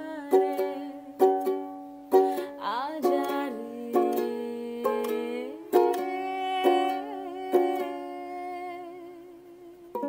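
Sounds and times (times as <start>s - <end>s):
woman singing: 0.0s - 1.4s, 2.2s - 10.0s
ukulele chord strummed: 0.0s - 10.0s.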